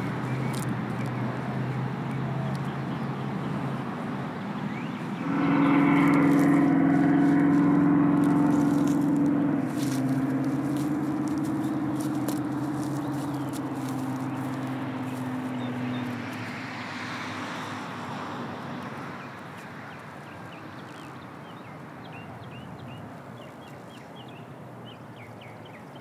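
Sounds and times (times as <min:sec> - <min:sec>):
vehicle engine droning: 0:00.0 - 0:21.8.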